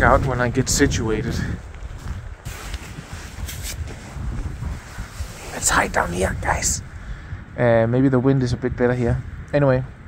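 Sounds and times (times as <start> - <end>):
wind buffeting microphone: 0.0 - 10.0
camera rustling against jacket: 1.6 - 6.3.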